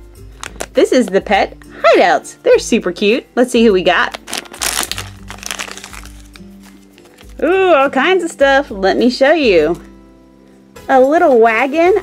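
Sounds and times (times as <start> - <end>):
background music with held notes: 0.0 - 12.0
plastic packet crinkling and tearing: 0.4 - 0.8, 4.0 - 7.5.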